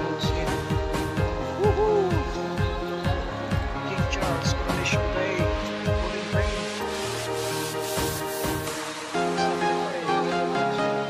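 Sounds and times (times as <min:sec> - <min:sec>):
background music with kick drum beat: 0:00.0 - 0:11.0.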